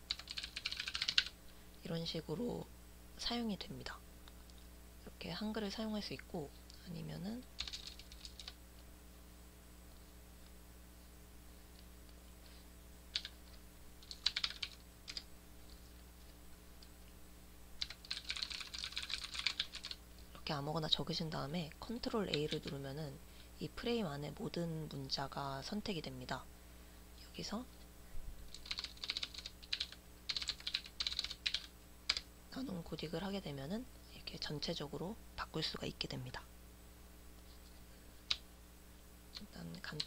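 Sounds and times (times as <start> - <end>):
faint low hum: 0.0 - 40.0
computer keyboard keystrokes: 0.1 - 1.3, 7.6 - 8.6, 13.1 - 13.4, 14.0 - 15.2, 17.8 - 20.0, 28.5 - 32.2.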